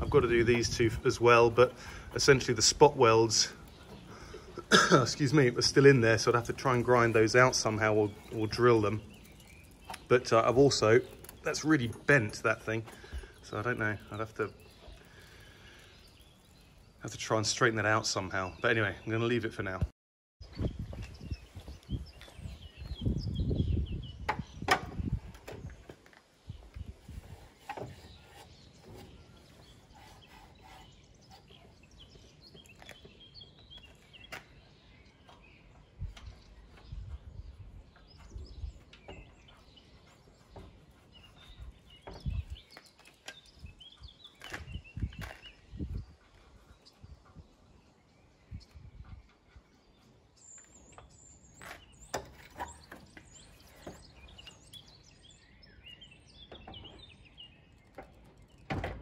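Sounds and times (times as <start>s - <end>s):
birds chirping: 0.0s - 59.0s.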